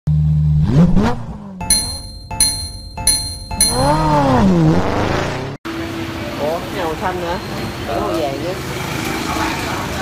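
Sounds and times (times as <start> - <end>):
bright chime: 1.6 - 4.3
engine sound effect revving: 3.7 - 5.6.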